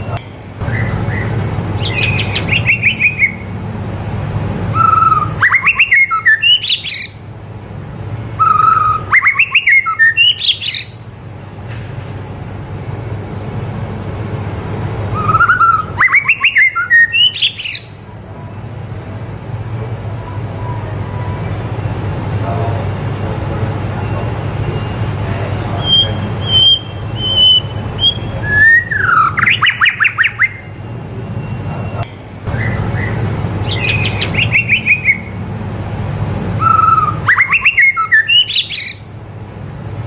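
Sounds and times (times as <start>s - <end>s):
bird singing: 0.0s - 3.6s, 4.7s - 7.4s, 8.3s - 11.1s, 15.1s - 18.1s, 24.0s - 35.4s, 36.6s - 39.2s.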